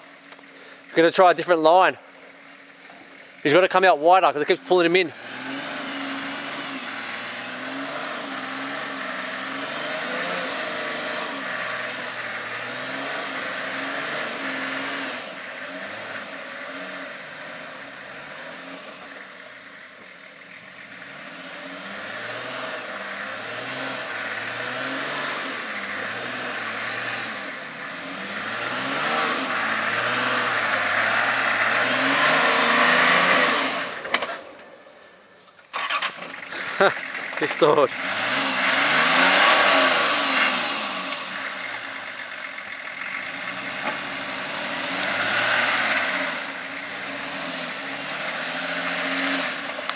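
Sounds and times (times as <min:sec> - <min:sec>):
engine revving under load: 0:03.5 - 0:49.9.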